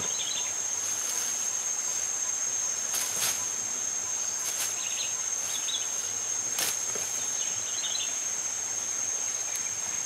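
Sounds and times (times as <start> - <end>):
insect chorus drone: 0.0 - 10.0.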